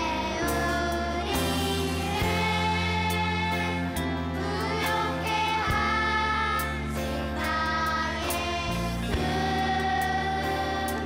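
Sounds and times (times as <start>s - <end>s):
children's choir singing: 0.0s - 11.0s
instrumental backing: 0.0s - 11.0s.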